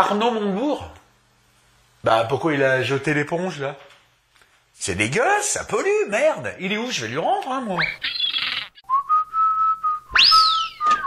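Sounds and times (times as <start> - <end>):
person whistling: 8.8 - 11.0.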